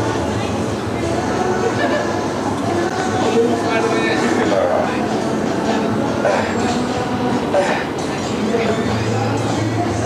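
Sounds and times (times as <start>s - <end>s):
murmuring voices: 0.0s - 10.0s.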